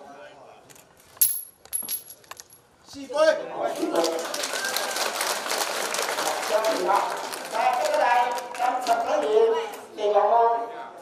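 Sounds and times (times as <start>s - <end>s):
wooden blocks clattering on concrete: 1.2s - 2.6s.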